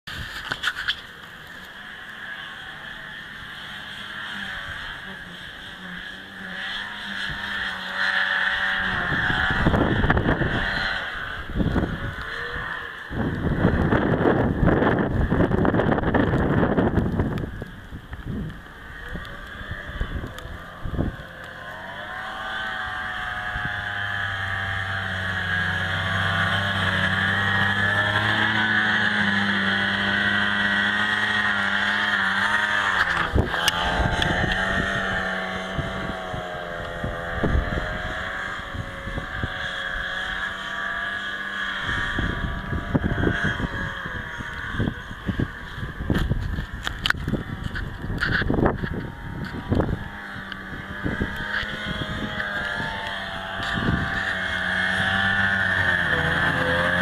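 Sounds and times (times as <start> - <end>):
snowmobile engine: 0.0 - 57.0
wind buffeting microphone: 8.4 - 57.0.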